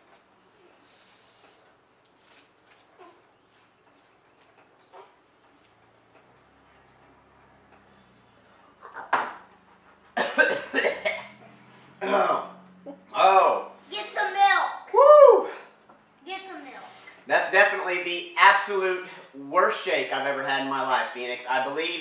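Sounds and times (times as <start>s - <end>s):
man coughing and sputtering: 10.2s - 11.4s.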